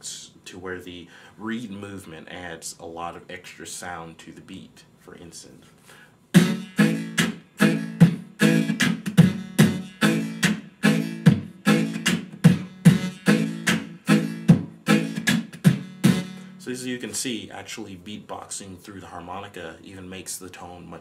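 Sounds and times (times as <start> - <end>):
beatboxing through harmonica: 6.3 - 16.6.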